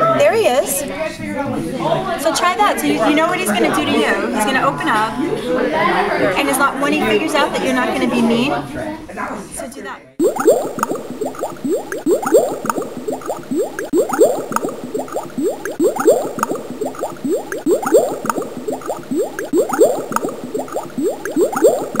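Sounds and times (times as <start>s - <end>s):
water bubbling: 10.2s - 22.0s.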